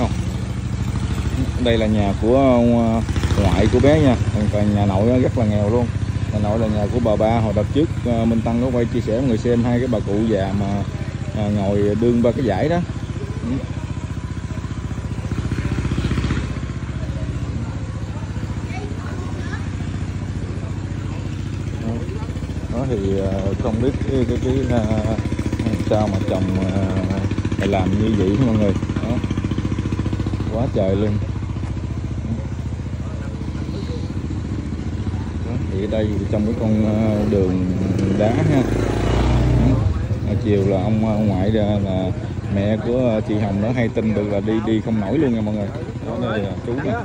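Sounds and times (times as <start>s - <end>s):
faint voices: 0.0s - 47.0s
small engine idling: 0.0s - 47.0s.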